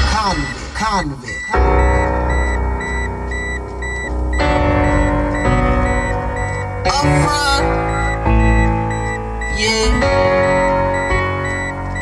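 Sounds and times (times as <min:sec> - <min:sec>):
heavy bass: 0:00.0 - 0:12.0
music through car stereo: 0:00.0 - 0:12.0
short high beep: 0:00.0 - 0:12.0.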